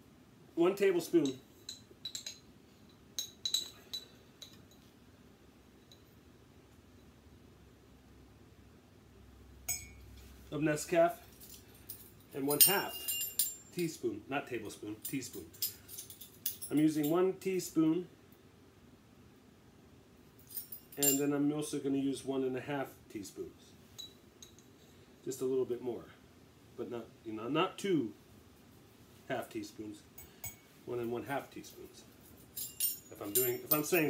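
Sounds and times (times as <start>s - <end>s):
metal measuring spoons jingling: 11.2s - 14.0s, 15.0s - 17.2s, 20.4s - 21.3s, 32.1s - 34.0s
teaspoon clinking against glass jar: 12.5s - 13.7s, 32.4s - 34.0s.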